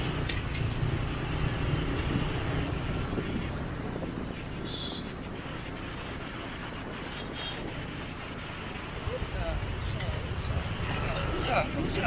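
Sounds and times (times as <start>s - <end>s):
scooter engine rumble: 0.0s - 12.0s
wind noise: 0.0s - 12.0s.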